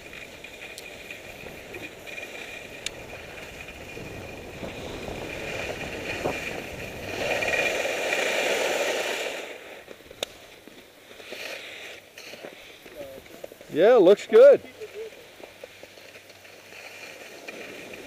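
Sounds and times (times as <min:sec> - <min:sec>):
snow scraping under ski edges: 0:00.0 - 0:18.0
wind rushing over microphone: 0:02.7 - 0:08.0.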